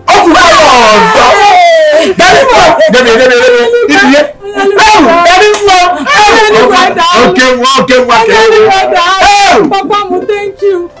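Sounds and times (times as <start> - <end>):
people shouting joyfully: 0.0 - 10.3.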